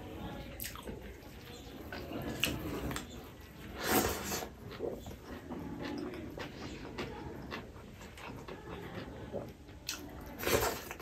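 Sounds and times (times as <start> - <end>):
chewing with wet mouth noises: 0.5 - 11.0.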